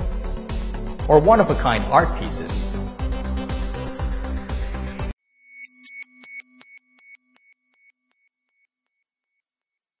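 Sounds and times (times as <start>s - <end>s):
electronic logo jingle: 5.2s - 7.4s.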